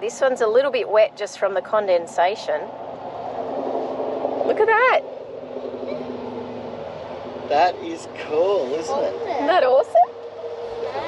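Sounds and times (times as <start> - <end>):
vehicle engine idling: 0.0 - 11.0.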